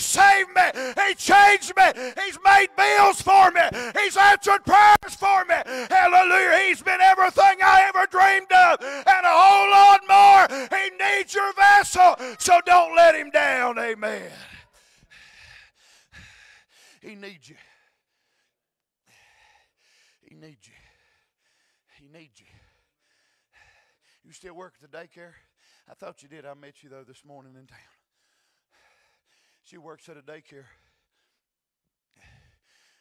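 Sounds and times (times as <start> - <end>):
man preaching loudly: 0.0 - 14.6
man breathing: 0.7 - 1.0, 1.9 - 2.2, 3.7 - 4.0, 5.6 - 5.9, 8.8 - 9.1, 10.4 - 10.7, 12.2 - 12.4, 14.4 - 17.0, 22.5 - 24.2, 32.2 - 33.0.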